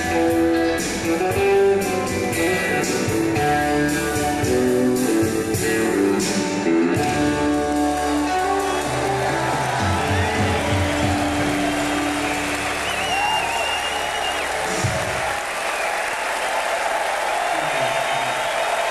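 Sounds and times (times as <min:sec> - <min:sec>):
audience applause and cheering: 0:07.1 - 0:18.9
long high whistle: 0:12.0 - 0:14.6.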